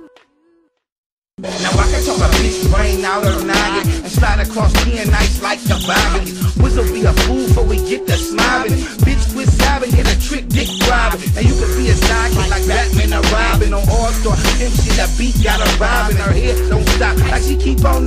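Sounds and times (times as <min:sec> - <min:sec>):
rapping over a beat: 0:01.4 - 0:18.0
steady hi-hats: 0:01.4 - 0:18.0
deep bass kicks: 0:01.7 - 0:05.4, 0:06.0 - 0:07.8, 0:09.0 - 0:18.0.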